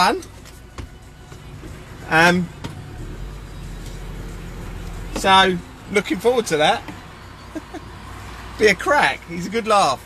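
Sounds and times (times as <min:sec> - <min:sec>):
vehicle engine idling: 0:00.3 - 0:10.0.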